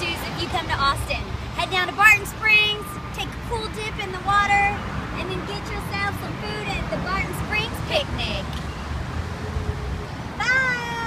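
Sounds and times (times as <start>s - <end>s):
woman's high drawn-out call: 10.4s - 11.0s.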